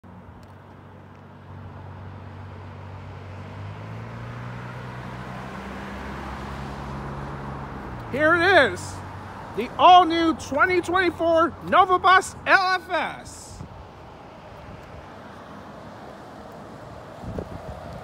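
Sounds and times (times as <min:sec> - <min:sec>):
bus engine drone: 0:00.1 - 0:18.0
traffic on wet road: 0:00.1 - 0:18.0.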